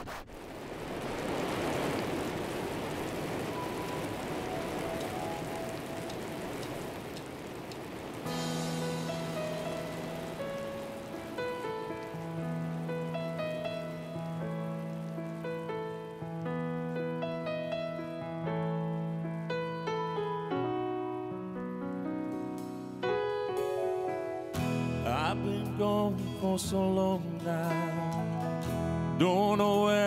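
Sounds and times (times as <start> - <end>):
rain: 0.0 - 23.9
sustained keyboard chords: 8.0 - 26.5.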